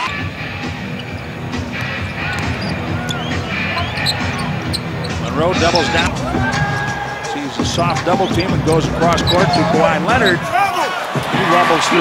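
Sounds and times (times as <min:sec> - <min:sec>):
sneaker squeaks: 0:00.0 - 0:06.1, 0:07.8 - 0:10.4
arena music: 0:00.0 - 0:12.0
basketball dribbling on court: 0:00.9 - 0:05.8.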